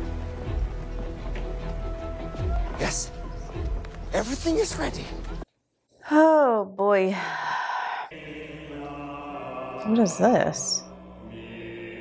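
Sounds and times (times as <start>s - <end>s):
choral chanting drone: 7.9s - 12.0s.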